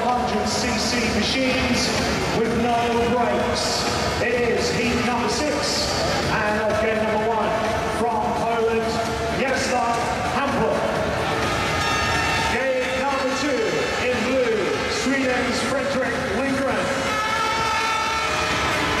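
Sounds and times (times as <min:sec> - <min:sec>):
public address voice: 0:00.0 - 0:11.0, 0:12.5 - 0:17.2
crowd: 0:00.0 - 0:19.0.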